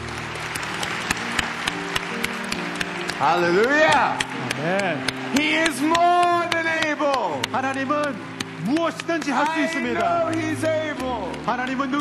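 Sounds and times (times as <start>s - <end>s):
audience applauding: 0.0s - 12.0s
sustained background music notes: 0.0s - 12.0s.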